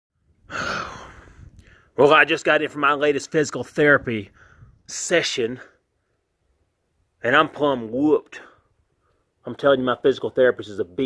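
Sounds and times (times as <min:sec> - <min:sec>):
man sighing heavily: 0:00.4 - 0:01.9
faint short breath: 0:04.3 - 0:04.8.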